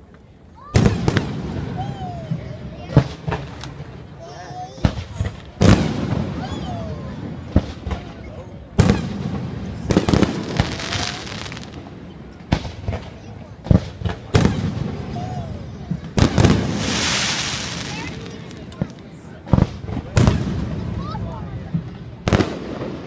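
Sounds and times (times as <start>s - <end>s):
crowd voices: 0.0s - 23.0s
fireworks bangs: 0.7s - 23.0s
fireworks crackling: 0.7s - 23.0s.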